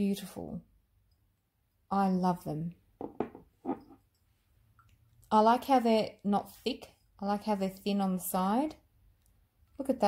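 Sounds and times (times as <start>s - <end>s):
glass bottles knocking: 3.0s - 4.0s.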